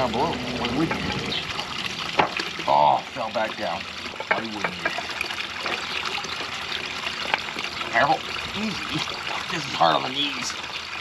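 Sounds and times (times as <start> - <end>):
small waterfall spilling into pond: 0.0 - 11.0.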